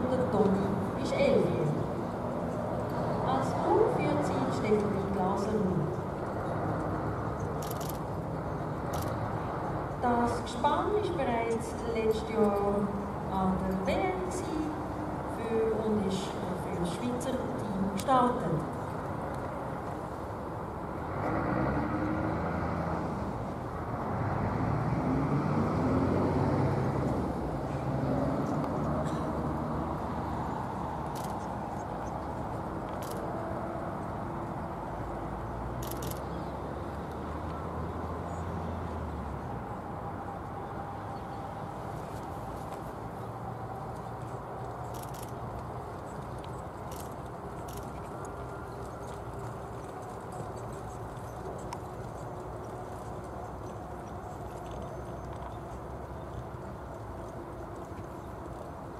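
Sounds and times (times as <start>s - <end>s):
motor vehicle humming: 0.0s - 58.9s.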